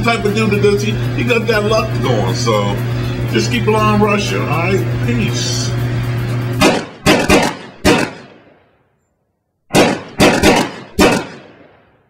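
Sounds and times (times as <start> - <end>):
background music: 0.0 - 7.6
sharp ringing bangs: 6.5 - 8.8, 9.7 - 12.0.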